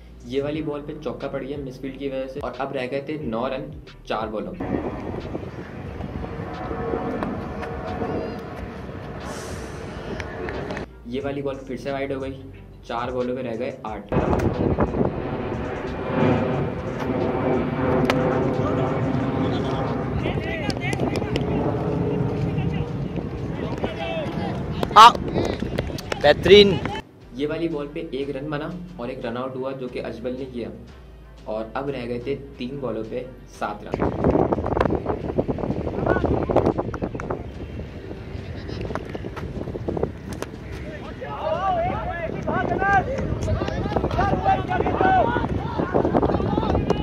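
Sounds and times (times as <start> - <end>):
steady low rumble: 3.3 - 13.0, 14.1 - 29.4, 30.0 - 47.0
young men calling and shouting: 18.5 - 34.1, 40.0 - 47.0.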